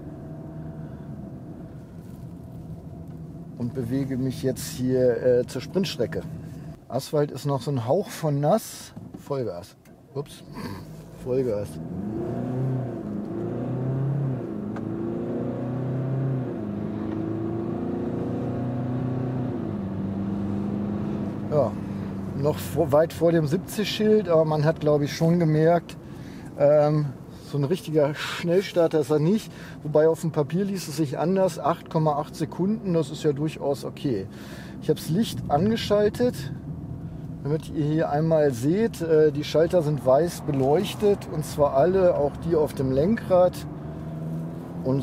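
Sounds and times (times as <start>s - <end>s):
car engine humming from inside cabin: 0.0s - 6.9s, 10.3s - 45.0s.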